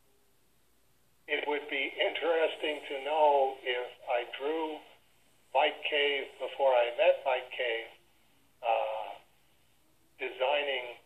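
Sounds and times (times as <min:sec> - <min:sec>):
man talking over telephone: 0:01.3 - 0:08.0, 0:08.6 - 0:09.3, 0:10.2 - 0:11.0.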